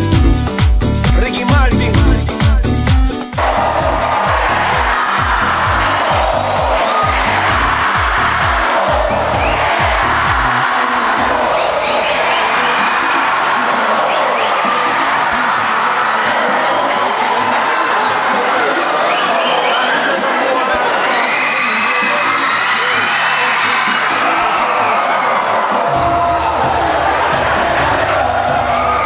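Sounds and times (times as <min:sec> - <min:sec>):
dance music bass beat: 0:00.0 - 0:29.0
crowd noise: 0:00.9 - 0:29.0.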